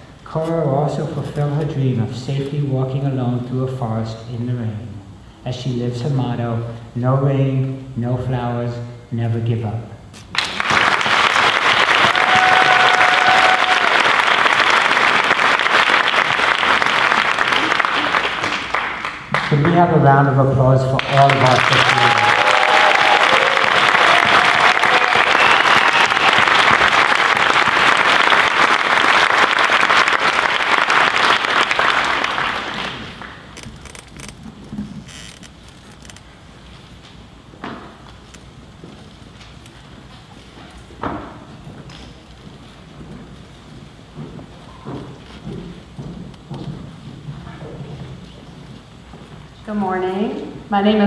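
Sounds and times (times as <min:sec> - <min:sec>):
audience applauding: 0:10.3 - 0:19.9, 0:20.9 - 0:34.3.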